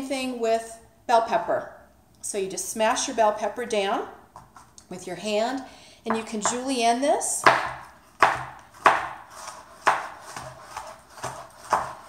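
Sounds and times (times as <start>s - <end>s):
knife striking cutting board: 7.4s - 12.0s.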